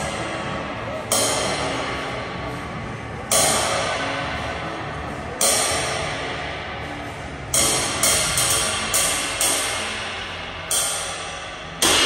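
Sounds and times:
ride cymbal struck with drumstick: 7.5 - 12.0.

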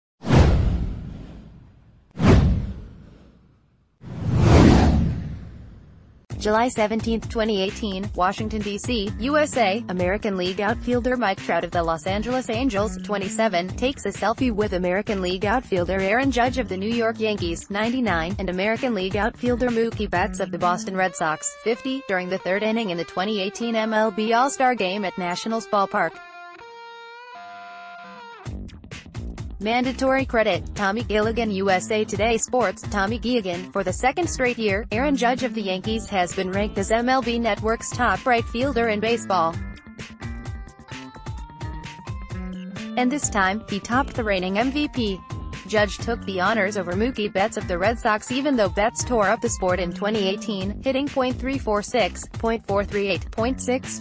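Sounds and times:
deep boom: 0.2 - 3.4, 4.1 - 6.3
whoosh sweeping down: 4.0 - 6.2.

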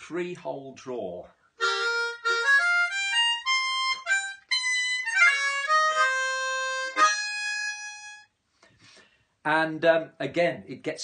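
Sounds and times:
blues harmonica phrase: 1.6 - 8.3.

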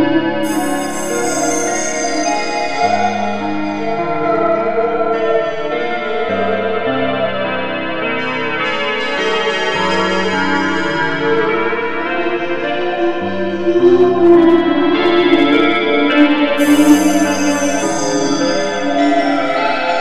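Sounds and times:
slow dark ambient music: 0.0 - 20.0.

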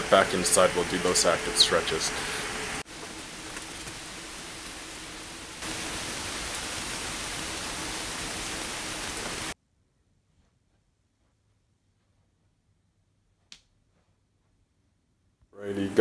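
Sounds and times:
steady rain falling: 0.0 - 9.6.

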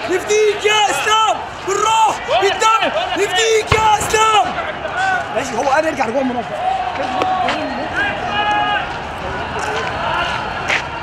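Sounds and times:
men shouting: 0.0 - 5.8
noisy outdoor background: 0.0 - 11.0.

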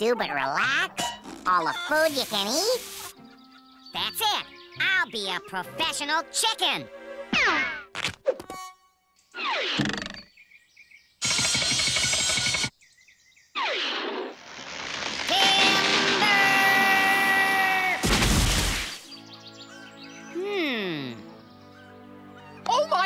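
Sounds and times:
burst of noise: 13.6 - 19.0.

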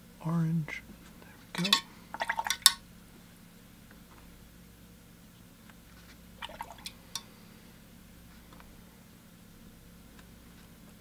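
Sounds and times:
brush clinking and splashing in jar: 1.6 - 2.8, 6.4 - 7.3.

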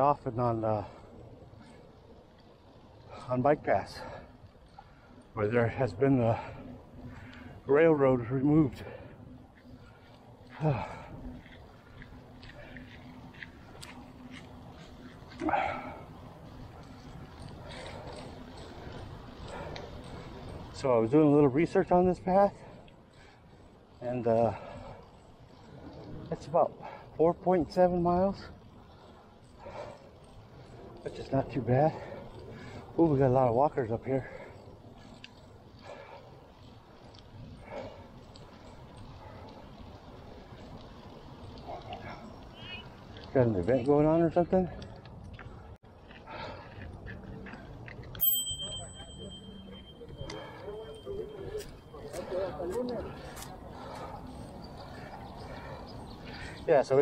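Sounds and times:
bicycle tyres rolling: 0.0 - 57.0
faint ticks: 6.3 - 7.6, 8.8 - 20.8, 34.3 - 43.8.

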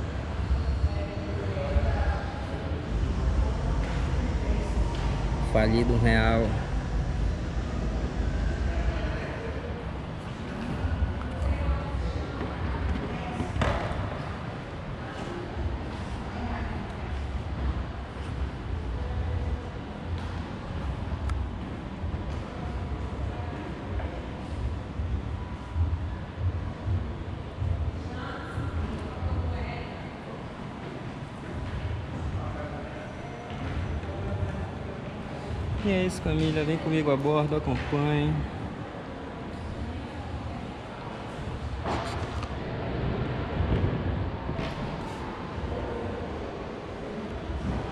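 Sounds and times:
steady low rumble: 0.0 - 32.7, 38.4 - 47.9
faint indistinct voices: 0.0 - 47.9.

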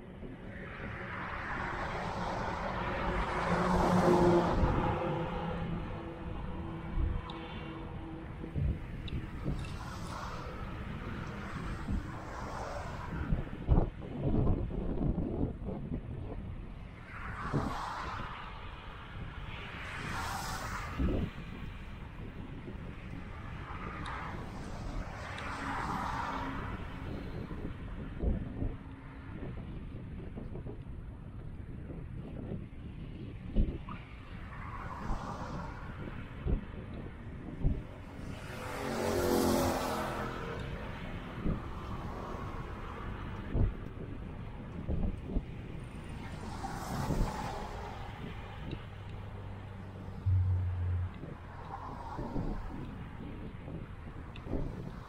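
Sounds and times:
cars passing: 0.0 - 55.0
wind rumble on microphone: 0.0 - 55.0
larger vehicle passing: 0.8 - 13.1, 37.6 - 43.7, 46.3 - 53.8.

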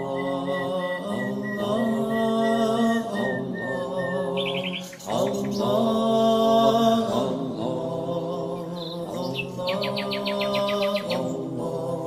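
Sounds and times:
high bird chirps trill: 0.0 - 6.0, 8.6 - 11.4
bird calls: 0.0 - 7.1, 8.4 - 11.4
person chanting: 0.0 - 12.0.

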